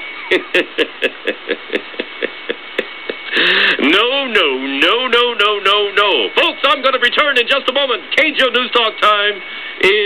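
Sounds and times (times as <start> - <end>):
man laughing over radio: 0.0 - 4.3.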